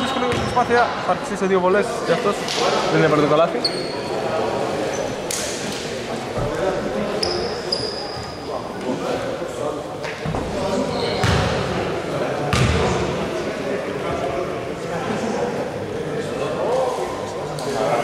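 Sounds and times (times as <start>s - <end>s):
indistinct echoing voices: 0.0s - 18.0s
short high squeaks: 3.6s - 4.1s.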